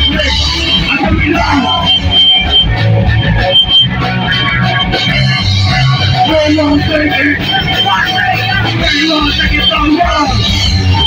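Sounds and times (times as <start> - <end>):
drums: 0.0 - 11.0
electric guitars: 0.0 - 11.0.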